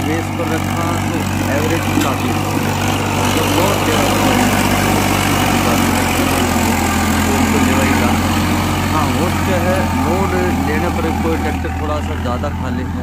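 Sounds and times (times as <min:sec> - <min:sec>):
tractor diesel engine running: 0:00.0 - 0:13.0.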